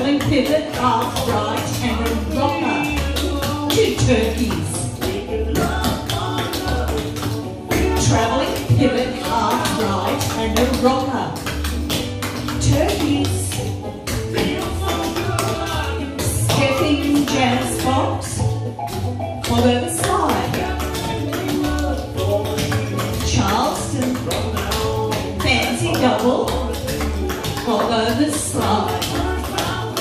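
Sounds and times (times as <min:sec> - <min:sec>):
clogging shoes tapping: 0:00.0 - 0:30.0
song with singing voice: 0:00.0 - 0:30.0.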